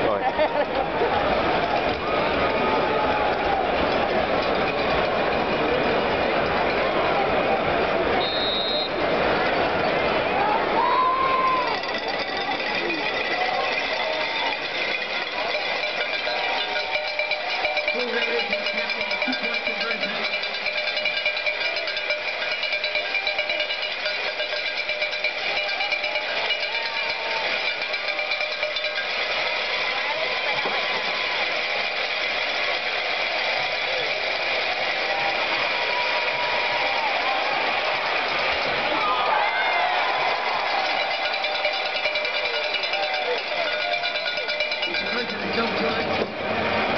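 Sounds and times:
crowd voices and shouts: 0.0 - 46.9
cowbells clanging: 11.0 - 38.8, 39.4 - 46.9.

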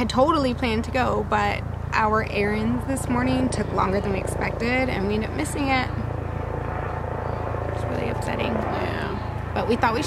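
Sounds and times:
distant vehicle rumble: 0.0 - 10.0.

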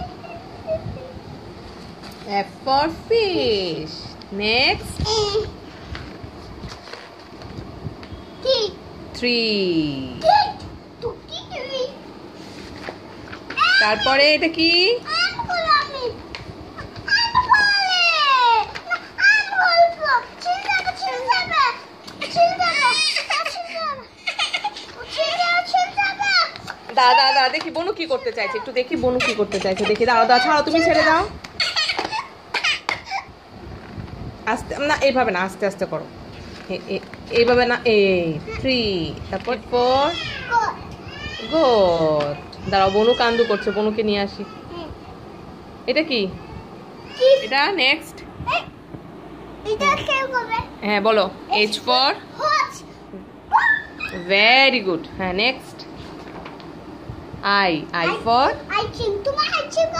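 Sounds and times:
book page rustling: 5.8 - 7.7
child calling out: 16.8 - 24.1, 40.0 - 41.8, 46.5 - 47.7, 53.5 - 54.3
child's high-pitched squeal: 40.1 - 41.7, 46.5 - 47.6, 53.5 - 54.3.

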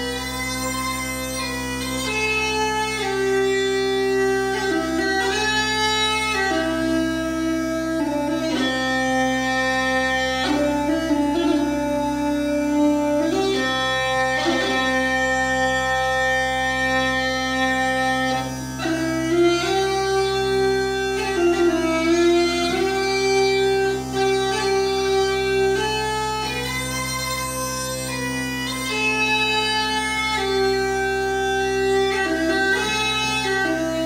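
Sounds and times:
pipes drone: 0.0 - 34.0
uilleann pipes melody: 0.0 - 34.0.

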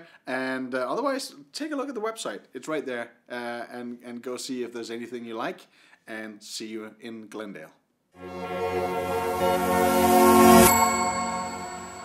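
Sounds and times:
held music chord: 8.2 - 12.0
rising whoosh: 8.2 - 12.0
bright metallic ding: 9.6 - 12.0.

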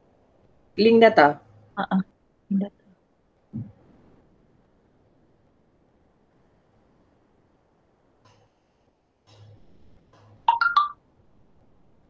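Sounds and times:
electronic notification chime: 10.5 - 10.9.

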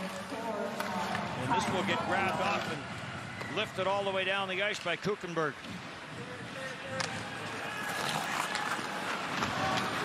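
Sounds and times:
crowd noise: 0.0 - 10.0
ice skating: 0.0 - 10.0.

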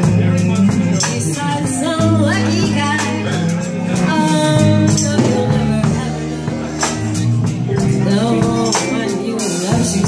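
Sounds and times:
live band playing: 0.0 - 10.0
person singing: 0.0 - 10.0.

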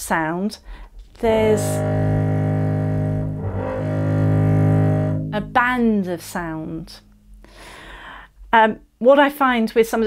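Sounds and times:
bowed double bass low note: 1.0 - 8.0.

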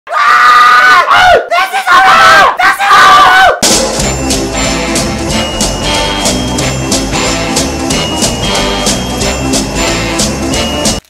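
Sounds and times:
man screaming: 0.1 - 3.6
music: 3.6 - 11.0.

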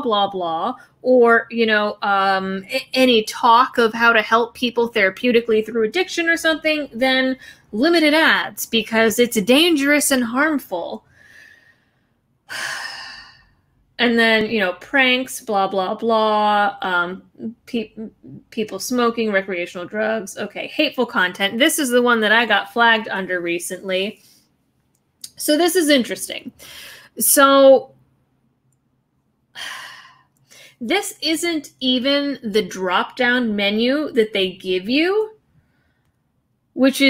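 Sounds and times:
woman breathing: 11.0 - 13.8, 26.6 - 27.2, 29.6 - 30.8, 35.5 - 36.2.

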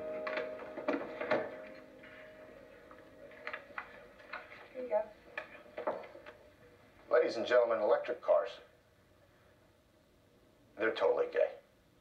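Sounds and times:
soft sustained musical chord: 0.0 - 4.2.

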